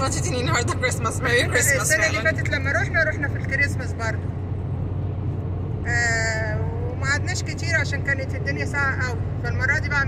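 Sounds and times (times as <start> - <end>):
car interior hum: 0.0 - 10.0.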